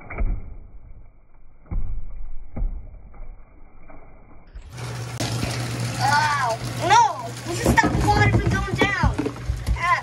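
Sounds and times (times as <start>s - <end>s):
tap water falling on plastic bottles: 6.6s - 10.0s.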